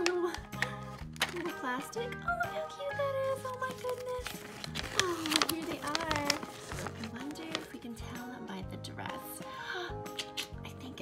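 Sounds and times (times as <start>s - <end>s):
paper and plastic crackling: 0.0s - 1.6s, 3.3s - 7.8s
background music: 0.0s - 11.0s.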